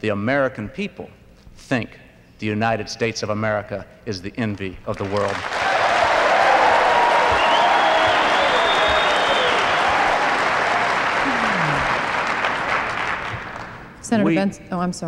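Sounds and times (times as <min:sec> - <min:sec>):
audience applauding: 0:04.9 - 0:14.0.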